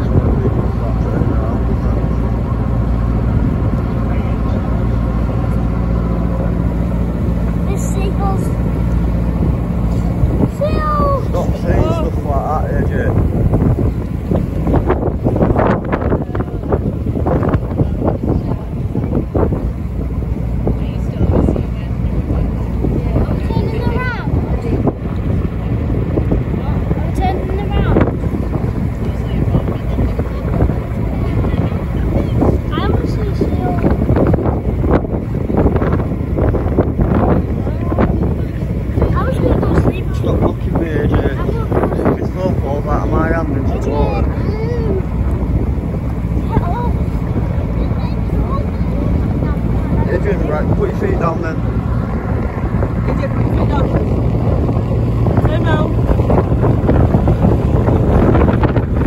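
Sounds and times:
boat engine droning: 0.0s - 59.0s
indistinct voices: 0.0s - 59.0s
water rushing: 0.0s - 59.0s
wind: 0.0s - 59.0s.

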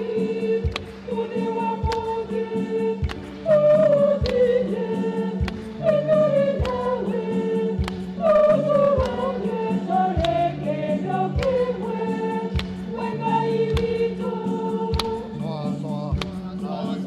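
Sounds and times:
choir singing a hymn: 0.0s - 17.0s
steady struck beat: 0.0s - 17.0s.

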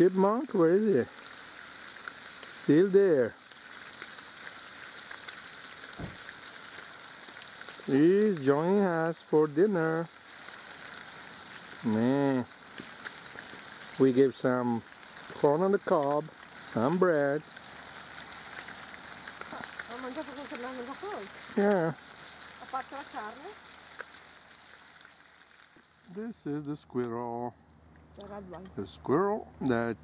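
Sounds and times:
faint crackling hiss: 0.0s - 30.0s
soft low thump: 6.0s - 6.2s.

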